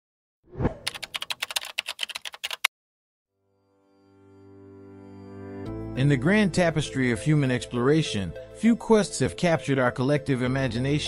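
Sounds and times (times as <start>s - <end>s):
keyboard typing: 0.8s - 2.7s.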